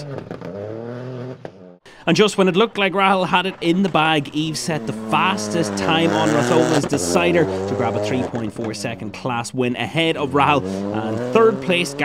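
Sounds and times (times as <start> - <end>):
rally car engine driving away: 0.0 - 1.8, 2.4 - 12.0.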